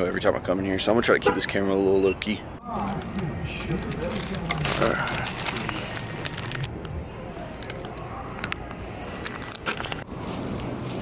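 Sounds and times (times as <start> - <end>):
plastic packaging crinkling: 2.8 - 6.8, 9.0 - 11.0
sharp clicks and crackles: 2.8 - 7.0.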